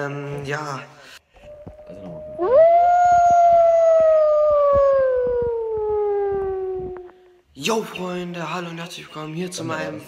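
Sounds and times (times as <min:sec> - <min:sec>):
long howl: 0:01.4 - 0:07.1.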